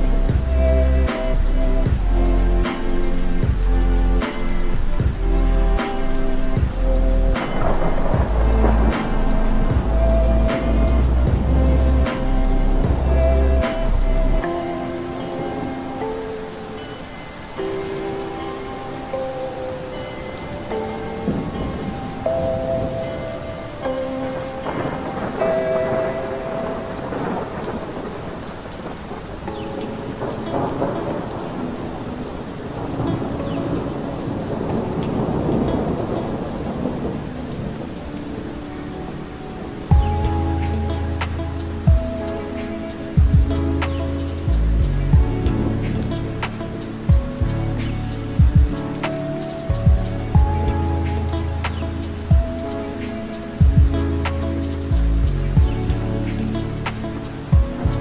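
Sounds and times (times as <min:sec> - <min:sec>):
bass and drum beat: 0:00.0 - 0:14.4, 0:39.9 - 0:42.3, 0:43.2 - 0:47.8, 0:48.4 - 0:52.6, 0:53.6 - 0:56.2, 0:57.6 - 0:58.0
rolling thunder: 0:00.0 - 0:15.8, 0:20.5 - 0:58.0
lo-fi keyboard music: 0:00.0 - 0:58.0
rain: 0:00.0 - 0:58.0.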